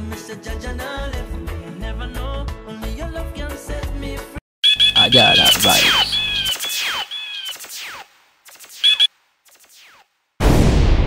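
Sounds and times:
reggae music: 4.6 - 6.5
high beeping tones: 4.6 - 6.6, 8.8 - 9.1.

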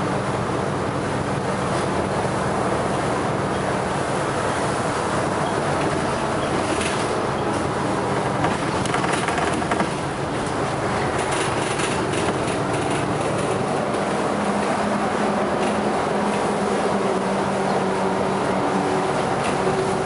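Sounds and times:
bus engine and tyre noise: 0.0 - 20.0.

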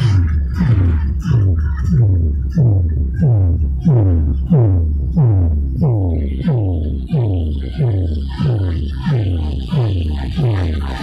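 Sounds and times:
deep booming bass: 0.0 - 11.0
electronic dance music: 0.0 - 11.0.

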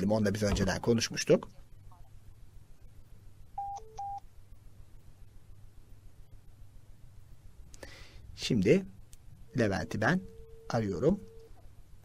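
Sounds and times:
faint low hum: 0.0 - 12.0
short electronic phone beeps: 3.6 - 4.2.

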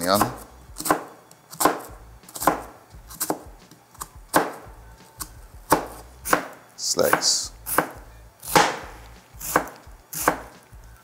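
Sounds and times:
knife chopping onion on cutting board: 0.0 - 10.6.

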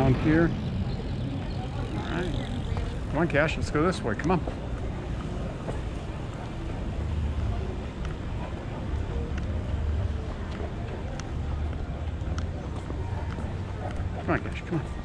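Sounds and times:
outdoor street ambience: 0.0 - 15.0.

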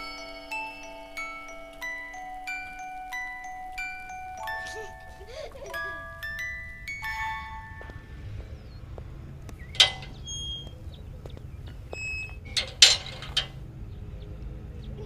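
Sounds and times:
ringing chime notes: 0.0 - 8.8
low steady hum: 0.0 - 15.0
metal gate clanking: 9.6 - 13.8.

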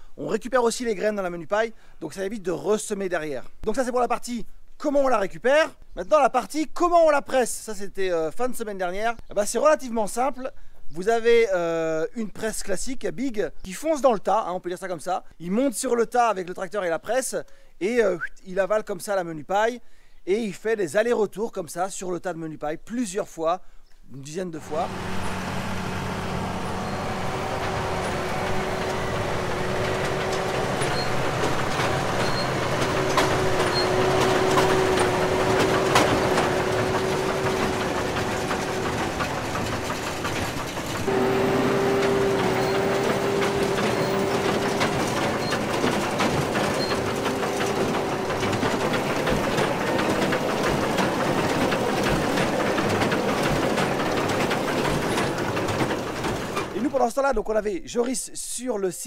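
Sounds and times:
steady machine whine: 24.6 - 56.7
tractor and baler running: 24.6 - 57.5.

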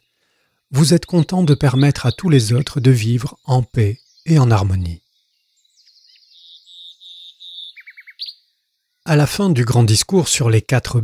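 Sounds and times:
faint birdsong chirps and trill: 0.0 - 11.0.

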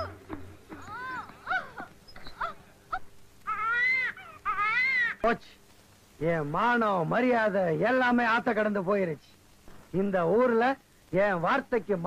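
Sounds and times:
high-pitched wailing cries: 0.0 - 5.3.

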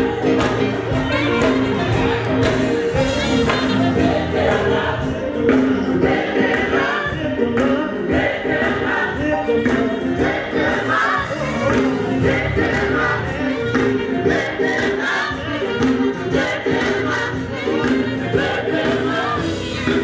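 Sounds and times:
gospel choir singing: 0.0 - 20.0
live band with organ: 0.0 - 20.0.

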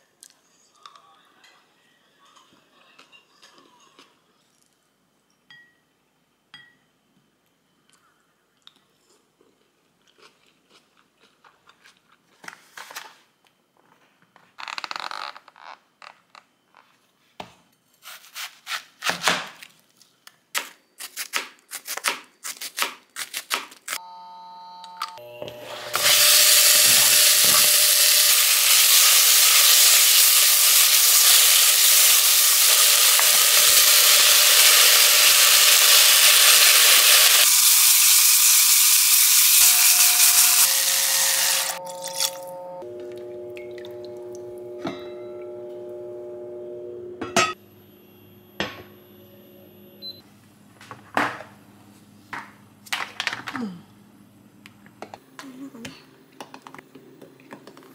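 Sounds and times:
meat and onion sizzling loudly: 25.6 - 42.3.

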